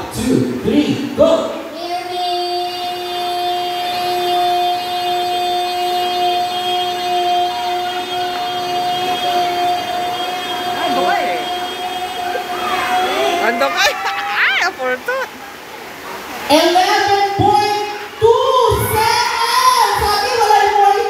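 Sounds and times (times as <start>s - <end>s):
faint voices: 0.6s - 21.0s
child singing a long note: 1.7s - 13.6s, 16.5s - 21.0s.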